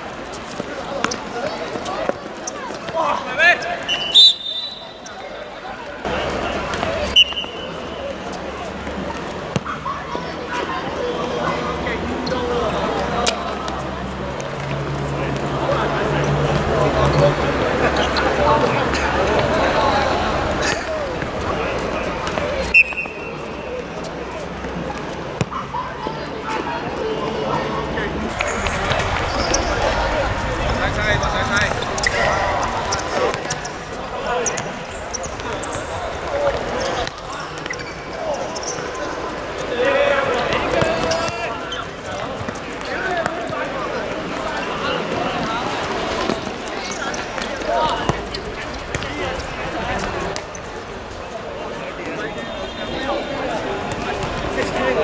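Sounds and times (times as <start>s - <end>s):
players calling and chatter: 0.0s - 55.0s
players shouting: 25.9s - 50.4s.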